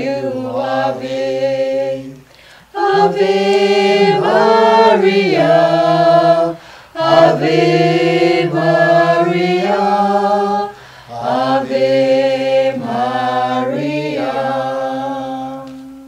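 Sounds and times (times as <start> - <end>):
group singing a hymn unaccompanied: 0.0 - 16.0.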